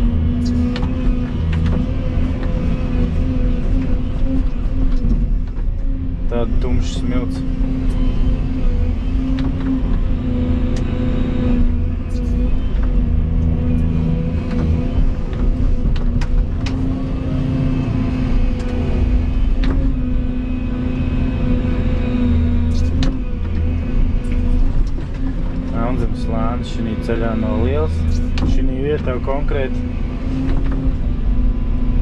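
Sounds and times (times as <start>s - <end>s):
excavator diesel engine running: 0.0s - 32.0s.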